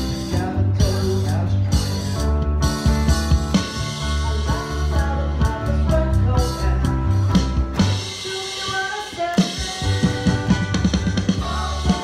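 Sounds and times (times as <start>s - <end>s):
live band playing pop song: 0.0s - 12.0s
drum fill: 1.8s - 12.0s.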